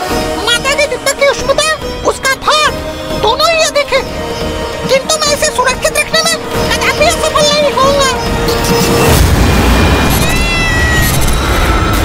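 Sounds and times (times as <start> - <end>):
steady low rumble: 9.1 - 12.0
cat meowing: 9.8 - 11.4.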